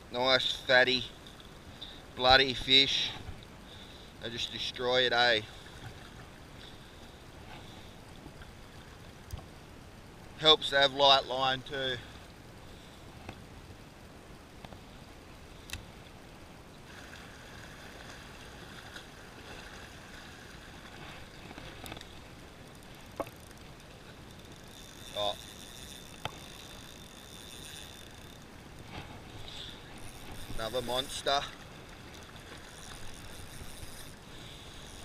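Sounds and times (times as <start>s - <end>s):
waves lapping against rocks: 16.8s - 35.0s.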